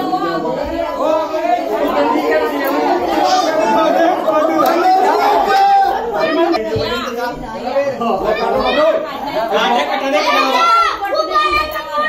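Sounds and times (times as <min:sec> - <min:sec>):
overlapping voices talking: 0:00.0 - 0:12.0.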